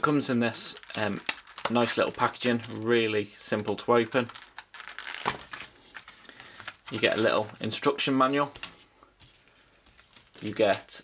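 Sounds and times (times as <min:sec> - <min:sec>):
plastic packaging crinkling: 0:00.0 - 0:08.8, 0:09.8 - 0:11.0.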